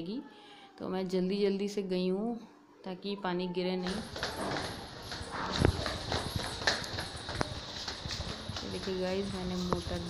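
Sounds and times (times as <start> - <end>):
footsteps hurrying down stairs: 3.8 - 10.0.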